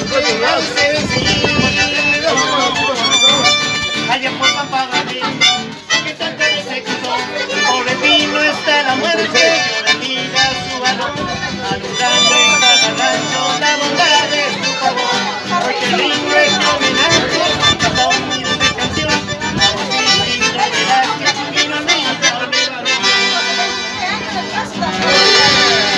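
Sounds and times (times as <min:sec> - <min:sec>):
piano accordion: 0:00.0 - 0:24.4
acoustic guitar: 0:00.0 - 0:25.9.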